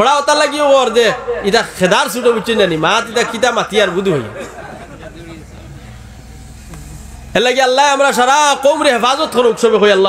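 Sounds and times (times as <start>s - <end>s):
steady low rumble: 0.9s - 7.6s.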